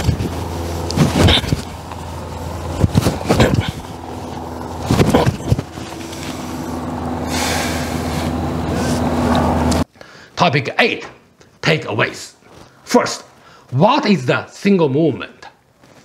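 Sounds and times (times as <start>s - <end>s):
vehicle passing: 0.0s - 9.9s
low hum of traffic: 0.0s - 14.8s.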